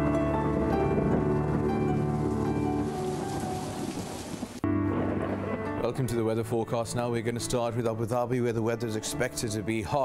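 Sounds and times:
rain and thunder: 0.0 - 6.4
music: 0.0 - 10.0.

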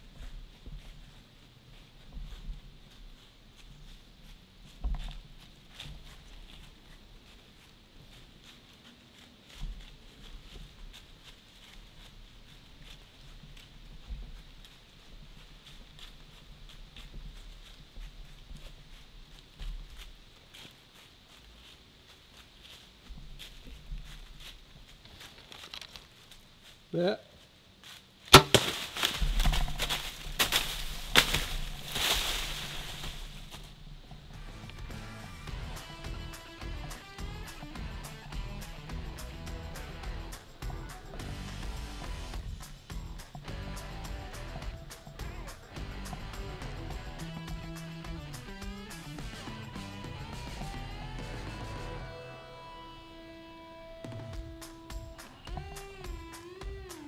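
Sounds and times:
footsteps crunching dry leaves: 0.0 - 35.1
bow firing crack: 28.3 - 33.4
twigs snapping: 28.3 - 33.6.

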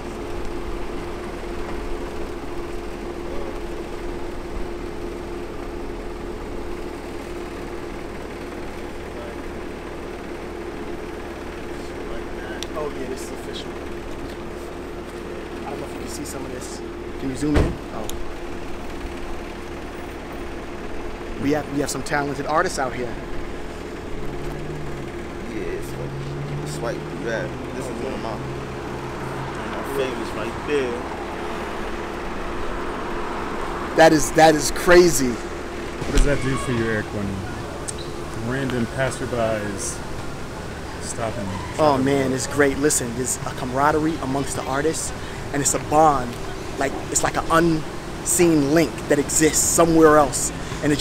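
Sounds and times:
car engine idling: 0.0 - 51.0.

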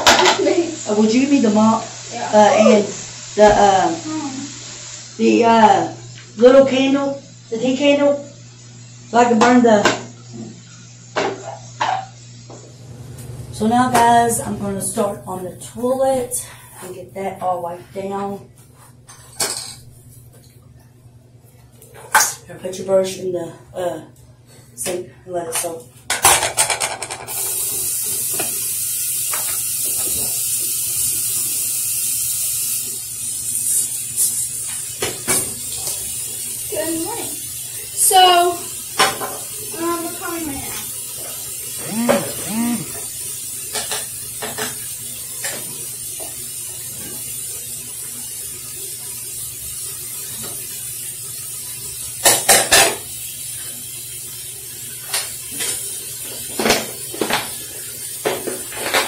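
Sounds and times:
tap running into sink: 28.1 - 30.6.

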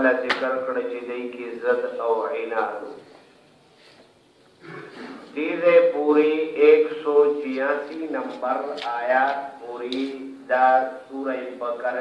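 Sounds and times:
man talking: 0.0 - 3.0, 5.2 - 12.0.

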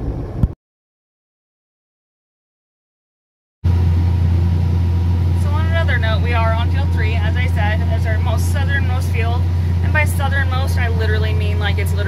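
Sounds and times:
tractor engine droning: 3.7 - 12.0
woman talking: 5.4 - 12.0.

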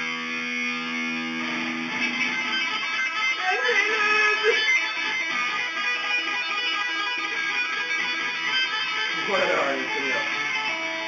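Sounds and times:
electric guitar lead: 0.0 - 11.0.

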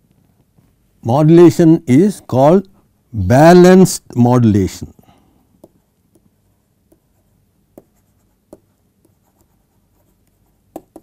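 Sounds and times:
stylus tapping and scratching: 5.6 - 11.0.

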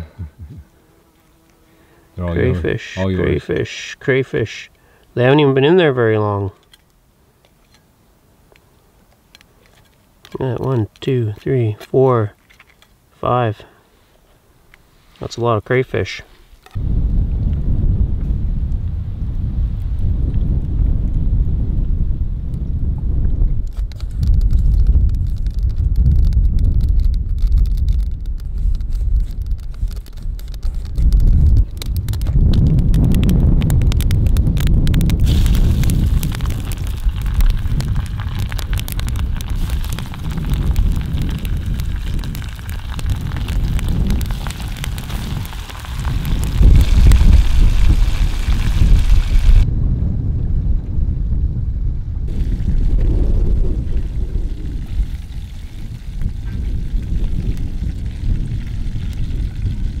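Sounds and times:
wind rumbling on microphone: 0.0 - 0.8, 16.6 - 60.0
sharp crackles: 23.3 - 49.7, 52.2 - 60.0
oil sizzling in a pan: 35.2 - 49.6.

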